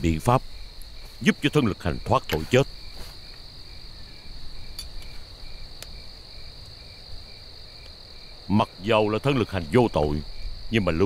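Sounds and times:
crickets chirping: 0.0s - 11.0s
faint ticks: 4.7s - 6.8s.

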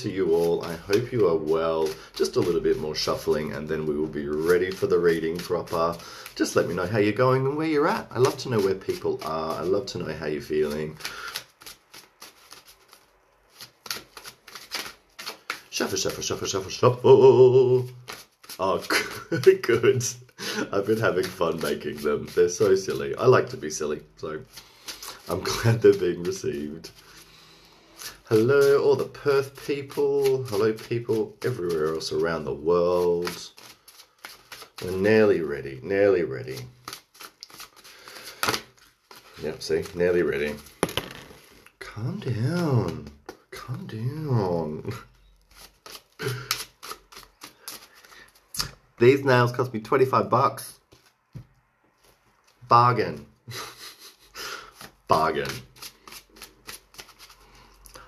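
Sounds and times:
cards shuffled by hand: 0.0s - 27.3s, 27.9s - 49.3s, 50.8s - 52.7s, 53.5s - 58.0s.

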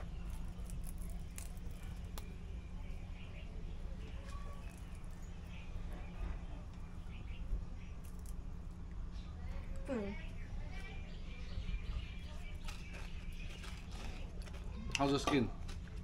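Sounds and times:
faint bird chirps: 2.2s - 8.3s, 9.0s - 14.9s.

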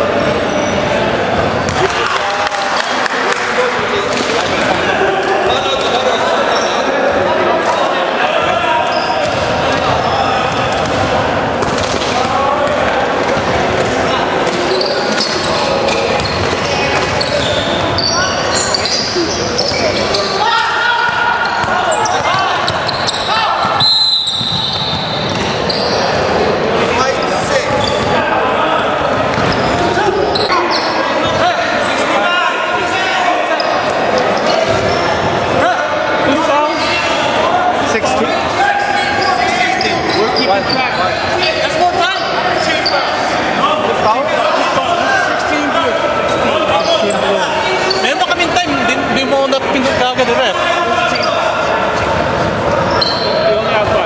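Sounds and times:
echoing players' voices: 0.0s - 54.0s.

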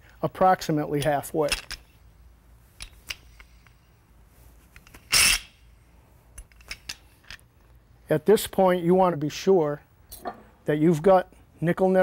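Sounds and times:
metal parts clicking: 1.5s - 1.8s, 6.4s - 7.4s.

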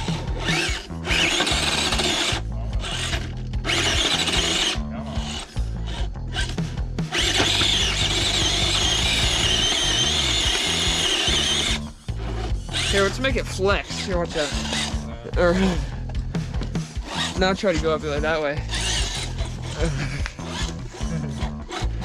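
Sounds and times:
electric motor and gears whining: 0.0s - 22.0s.

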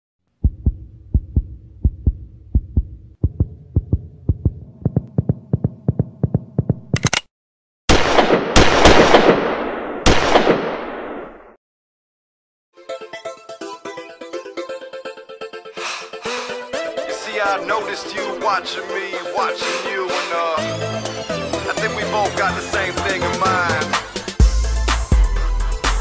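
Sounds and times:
heartbeat-like low thumps: 0.4s - 7.0s
gunshot blasts: 7.9s - 11.5s.

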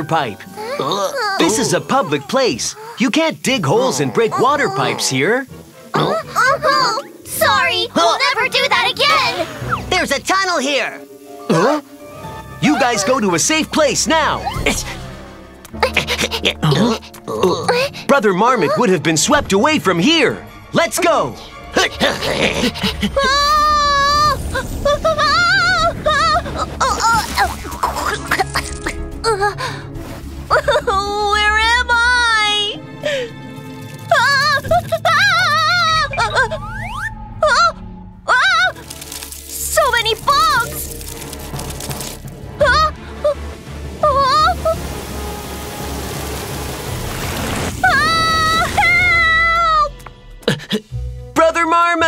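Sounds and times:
gushing water: 0.0s - 19.0s, 21.6s - 31.5s, 38.3s - 49.6s
background music: 0.0s - 52.0s
cartoon character crying and yelling: 0.6s - 3.1s, 3.7s - 5.2s, 21.9s - 27.3s, 34.1s - 36.8s.

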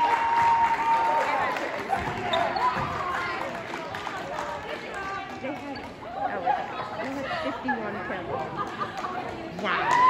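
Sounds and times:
players calling out and chattering: 1.4s - 3.6s.

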